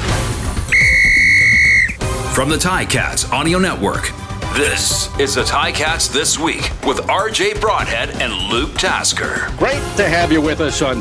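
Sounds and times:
long whistle blast: 0.7s - 2.0s.

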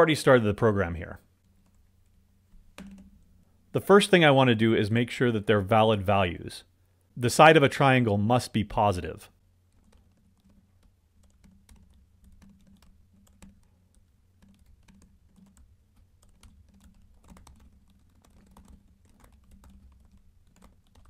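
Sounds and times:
faint typing on keyboard: 0.0s - 4.0s, 8.8s - 21.0s.

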